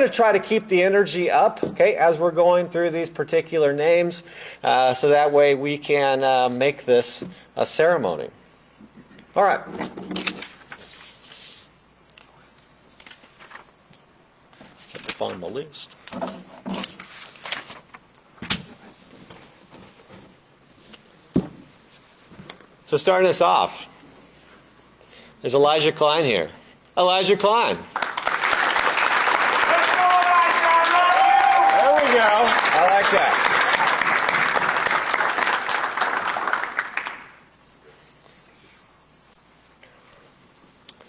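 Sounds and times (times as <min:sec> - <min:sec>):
audience applause: 0:27.9 - 0:37.4.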